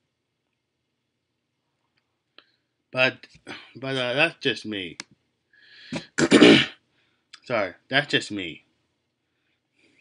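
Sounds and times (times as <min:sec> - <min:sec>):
man breathing in: 0:05.5 - 0:06.1
sneeze or hard cough: 0:05.9 - 0:06.8.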